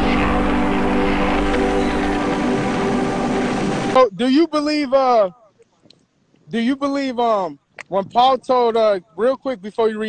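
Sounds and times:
droning intro music: 0.0s - 4.0s
rushing noise: 0.0s - 4.1s.

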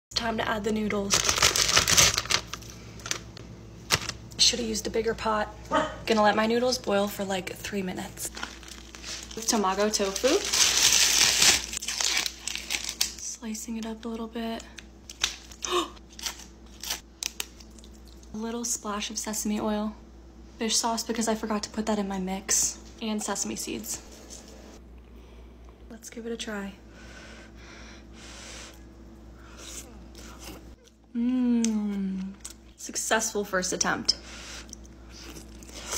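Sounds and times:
plastic packaging crinkling: 1.0s - 4.2s, 8.2s - 13.3s.

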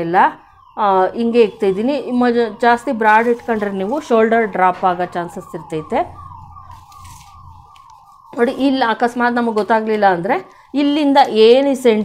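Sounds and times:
siren-like descending tone: 0.0s - 12.0s
low hum: 5.4s - 8.1s.

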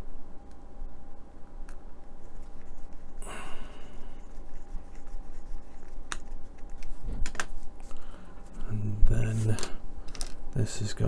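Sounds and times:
small plastic parts clicking: 9.6s - 10.4s.

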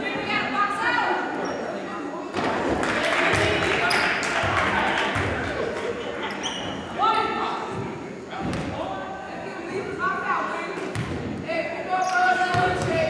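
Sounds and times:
spectators' voices echoing: 0.0s - 13.0s.

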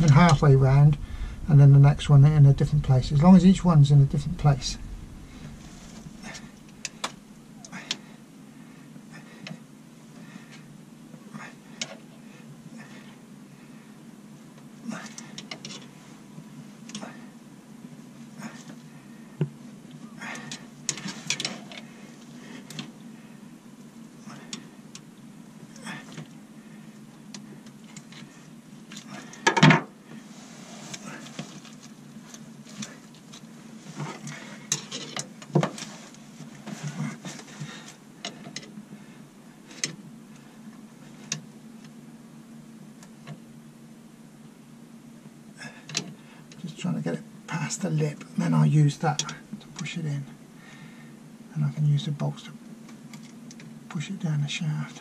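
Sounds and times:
low steady hum: 0.0s - 29.4s, 30.0s - 55.0s.

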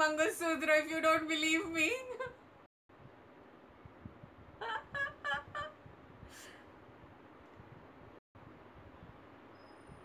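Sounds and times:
woman laughing softly: 4.6s - 6.7s.

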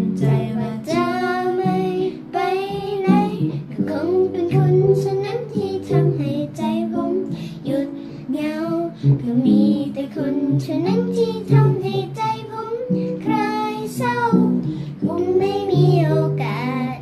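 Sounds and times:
girl singing: 0.0s - 17.0s.

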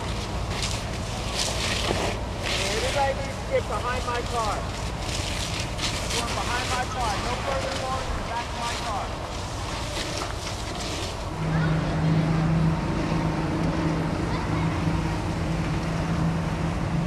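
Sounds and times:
fire crackling: 0.0s - 11.5s
hose spraying water: 0.0s - 12.0s
low engine drone: 0.0s - 17.0s.

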